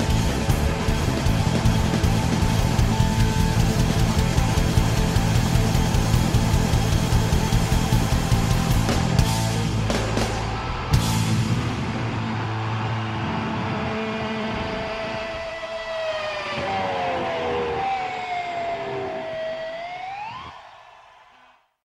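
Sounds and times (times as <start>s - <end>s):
electric guitar feedback: 0.0s - 20.5s.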